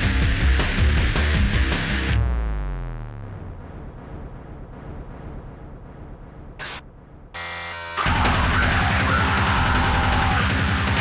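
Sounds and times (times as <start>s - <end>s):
industrial electronic music: 0.0s - 11.0s
low rumbling drone: 2.2s - 10.4s
harsh buzzing tone: 7.4s - 10.3s.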